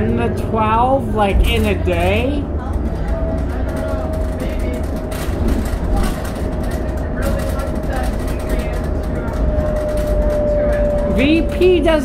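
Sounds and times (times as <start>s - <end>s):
bus engine and road rumble: 0.0s - 12.0s
interior rattles: 0.0s - 12.0s.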